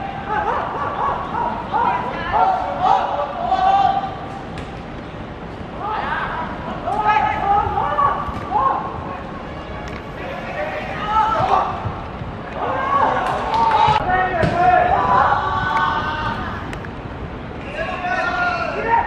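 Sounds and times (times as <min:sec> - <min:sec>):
footballers shouting: 0:00.0 - 0:04.4, 0:05.7 - 0:19.0
football being kicked: 0:13.9 - 0:14.6.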